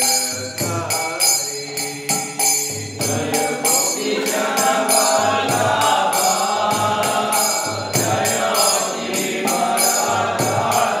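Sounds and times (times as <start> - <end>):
hand cymbals striking: 0.0 - 11.0
voices singing a chant: 0.0 - 11.0.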